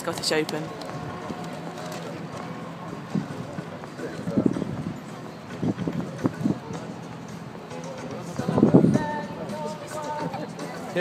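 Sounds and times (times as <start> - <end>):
distant crowd voices: 0.0 - 11.0
steady murmur: 0.0 - 11.0.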